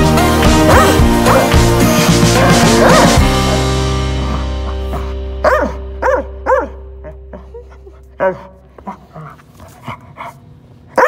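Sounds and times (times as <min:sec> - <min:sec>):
sustained music chord: 0:00.0 - 0:09.6.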